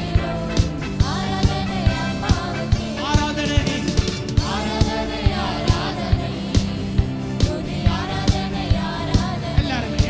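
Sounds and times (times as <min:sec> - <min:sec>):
bass: 0:00.0 - 0:10.0
keyboards: 0:00.0 - 0:10.0
steady drum beat: 0:00.0 - 0:10.0.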